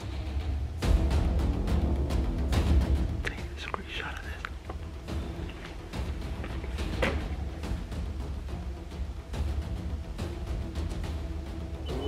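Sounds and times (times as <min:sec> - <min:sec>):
man whispering: 0:03.2 - 0:04.6.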